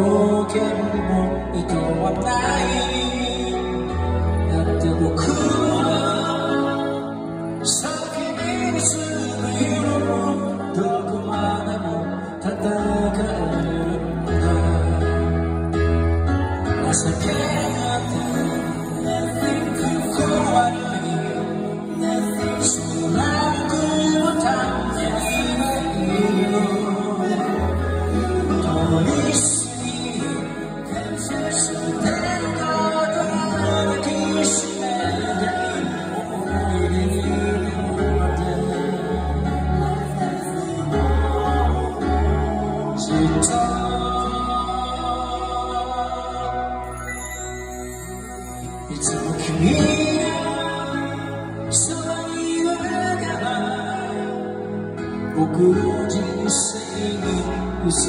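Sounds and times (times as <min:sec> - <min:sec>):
guitar: 0:00.0 - 0:58.0
live pop band playing: 0:00.0 - 0:58.0
man singing: 0:00.0 - 0:58.0.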